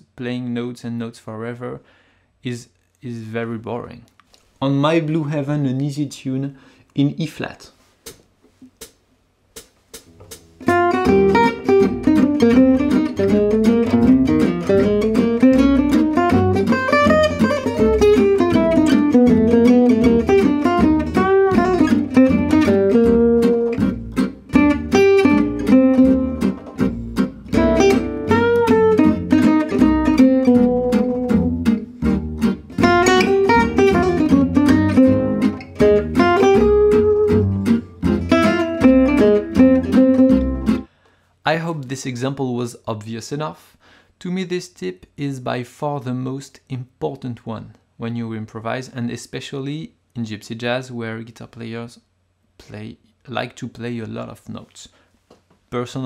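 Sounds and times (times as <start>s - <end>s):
swing rhythm backing: 7.8s - 40.9s
acoustic guitar solo: 10.1s - 40.9s.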